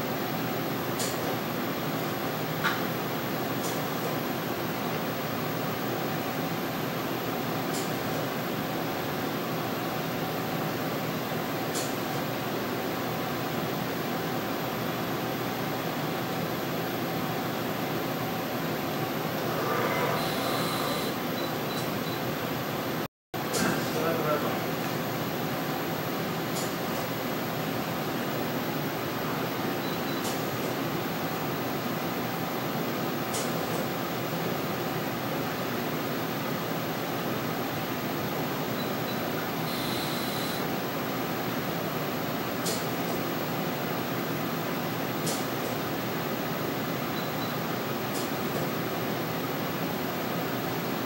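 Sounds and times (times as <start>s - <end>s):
fan-like equipment hum: 0.0s - 51.0s.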